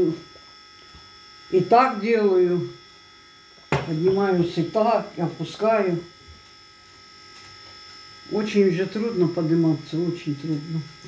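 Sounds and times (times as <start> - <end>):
high-pitched electrical whine: 0.0 - 11.0.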